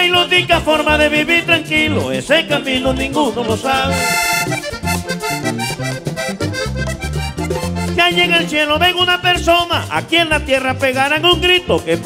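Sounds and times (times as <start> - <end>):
accordion melody: 0.0 - 12.0
walking bass line: 0.0 - 12.0.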